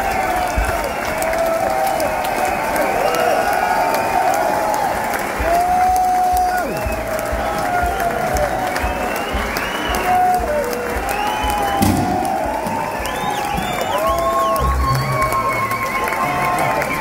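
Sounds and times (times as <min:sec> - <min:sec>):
crowd cheering and shouting: 0:00.0 - 0:17.0
crowd whistling: 0:00.0 - 0:17.0.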